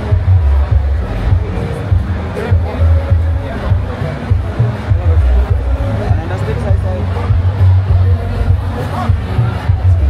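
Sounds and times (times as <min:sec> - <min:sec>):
loud bass-heavy music: 0:00.0 - 0:10.0.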